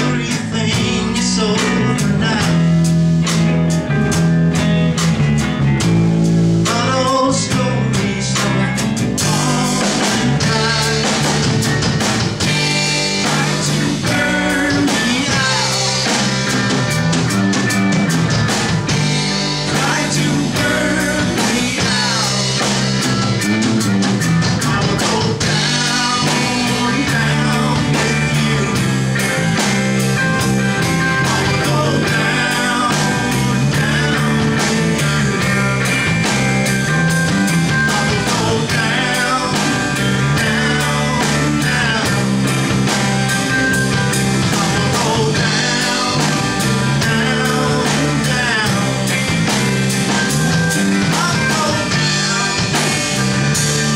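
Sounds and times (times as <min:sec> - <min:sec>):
bass guitar: 0:00.0 - 0:53.9
drum kit steady beat: 0:00.0 - 0:53.9
electric guitars: 0:00.0 - 0:53.9
rock band playing live: 0:00.0 - 0:53.9.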